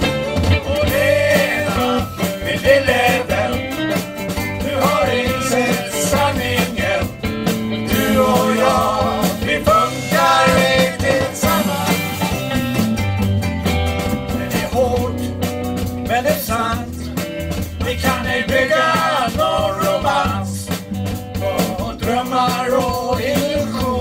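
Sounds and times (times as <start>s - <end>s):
drums: 0.0s - 24.0s
electric bass: 0.0s - 24.0s
electric guitar: 0.0s - 24.0s.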